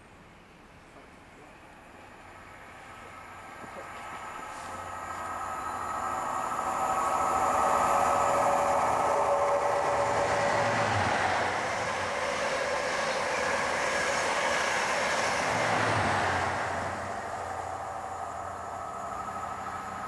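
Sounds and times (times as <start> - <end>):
train power car whine: 0.1 - 20.0
train coaches rushing past: 1.4 - 20.0.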